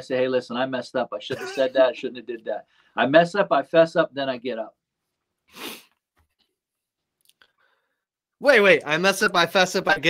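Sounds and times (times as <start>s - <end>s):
short sharp breath: 5.5s - 6.0s.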